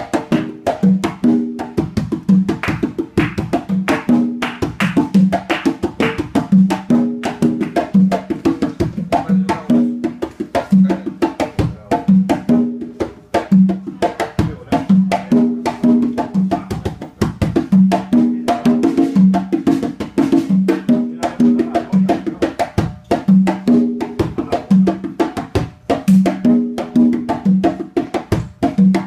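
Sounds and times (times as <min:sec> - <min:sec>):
conga drums: 0:00.0 - 0:29.0.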